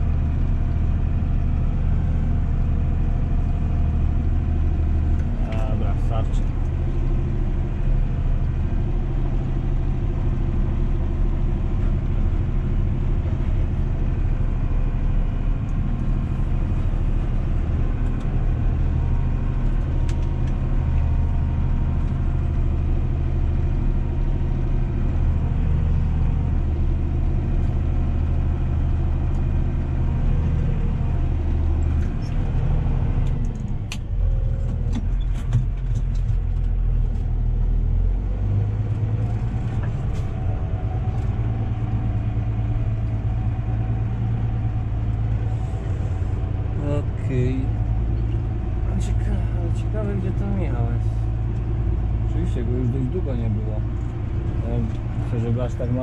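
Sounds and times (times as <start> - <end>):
tractor diesel engine running: 0.0 - 56.0.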